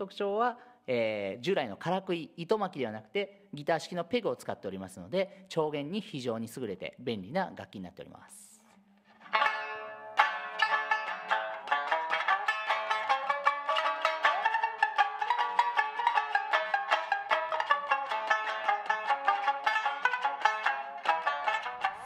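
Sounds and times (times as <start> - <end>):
plucked string instrument melody: 9.0 - 22.0.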